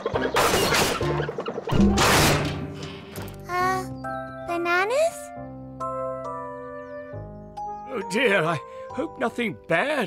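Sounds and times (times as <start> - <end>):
background music: 0.0 - 10.0
cartoon crash sound effect: 1.7 - 2.6.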